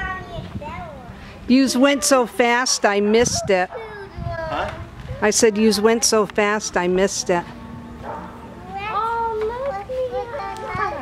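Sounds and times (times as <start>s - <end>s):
child's high-pitched voice: 0.0s - 1.2s, 3.3s - 5.3s, 8.6s - 11.0s.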